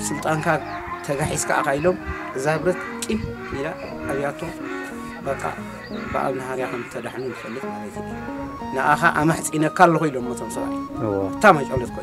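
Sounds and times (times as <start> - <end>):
background music: 0.0 - 12.0
man speaking: 11.0 - 12.0.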